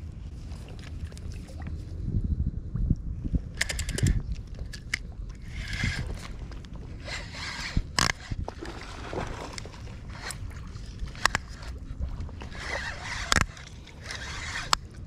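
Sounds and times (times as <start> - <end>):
fishing reel clicks: 3.6 - 6.3, 7.0 - 8.4, 11.1 - 11.8, 12.5 - 15.0
reel winding rasp: 5.4 - 6.3, 7.0 - 8.4, 10.1 - 10.4, 11.0 - 11.8, 12.4 - 15.0.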